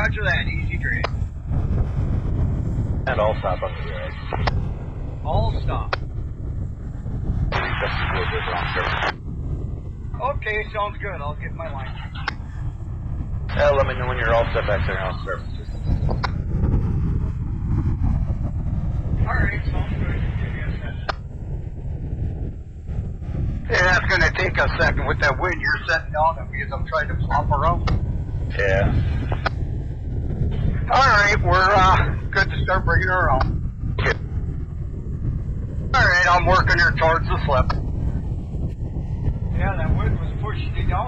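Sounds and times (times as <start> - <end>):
faint voice: 0.0 - 1.1, 3.1 - 4.5, 5.2 - 6.0, 7.5 - 9.2, 10.2 - 12.3, 13.5 - 16.3, 19.2 - 21.1, 23.7 - 27.9, 28.5 - 29.5, 30.5 - 34.2, 36.0 - 37.7, 39.5 - 41.0
wind buffeting microphone: 0.0 - 41.0.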